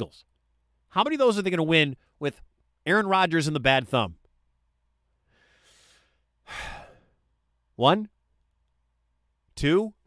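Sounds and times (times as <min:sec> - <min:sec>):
man breathing into microphone: 0:05.2 - 0:07.2.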